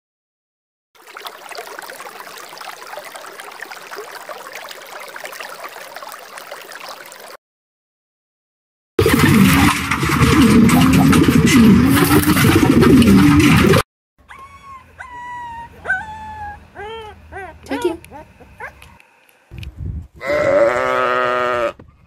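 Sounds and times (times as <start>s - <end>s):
dog whining and yipping: 14.3s - 19.0s
sheep bleating: 20.2s - 21.8s.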